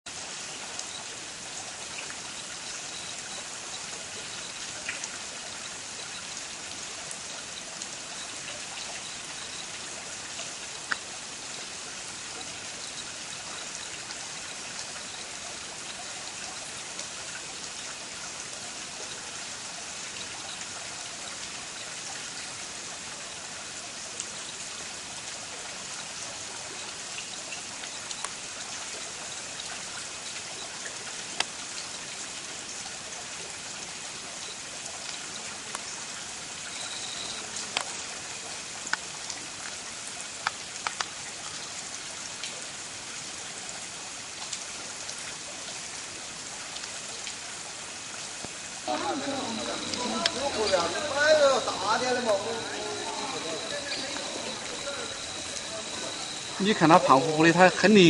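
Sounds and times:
steady hiss: 44.4 - 58.0.

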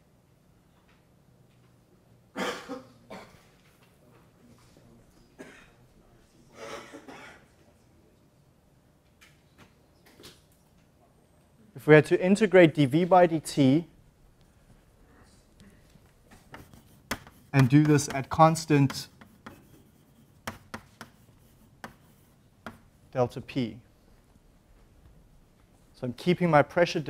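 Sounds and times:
person coughing: 2.4 - 3.5, 5.4 - 5.8, 6.5 - 7.5.

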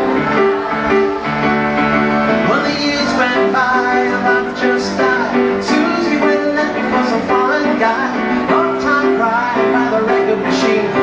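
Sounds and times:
grand piano chords: 0.0 - 11.0
person singing: 0.0 - 11.0.

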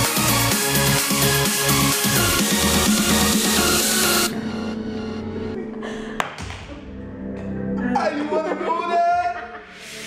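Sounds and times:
electronic dance music: 0.0 - 4.3.

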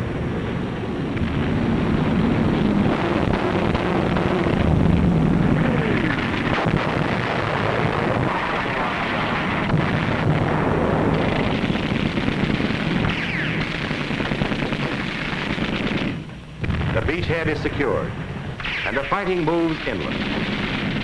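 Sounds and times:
rumble of explosions and gunfire: 0.0 - 21.0.

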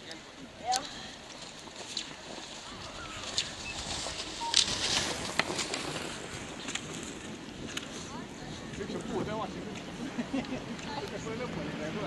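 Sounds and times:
skis scraping on snow: 1.6 - 9.9
ski poles clicking: 3.2 - 8.0.

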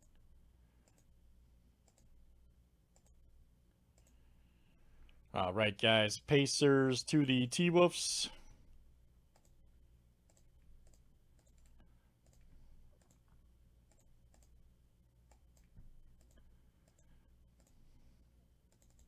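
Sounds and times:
low steady hum: 0.0 - 19.0
mouse and keyboard clicks: 1.8 - 2.1, 10.3 - 13.3, 13.9 - 14.6, 15.3 - 17.8, 18.7 - 19.0.

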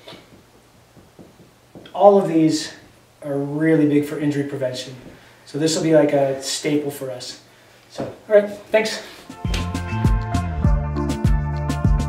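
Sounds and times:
faint soft taps: 0.0 - 2.0.

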